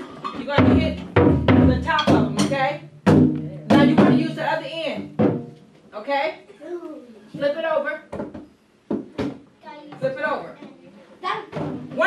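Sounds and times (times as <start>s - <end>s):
drums struck with booming hits: 0.4s - 5.6s.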